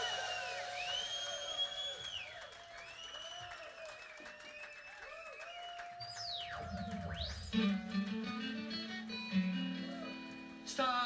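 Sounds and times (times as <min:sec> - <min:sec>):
whistle-like tones: 0:00.0 - 0:07.8
audience applauding and cheering: 0:00.0 - 0:10.6.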